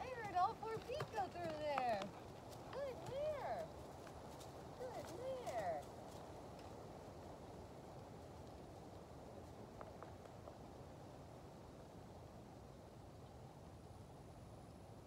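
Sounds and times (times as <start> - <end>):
horse hooves knocking: 0.0 - 4.2.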